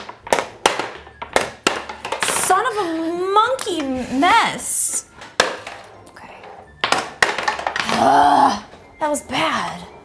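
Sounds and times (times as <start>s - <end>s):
balls knocking on ramp: 0.0s - 2.5s
balls rolling: 0.0s - 4.0s, 4.6s - 8.9s.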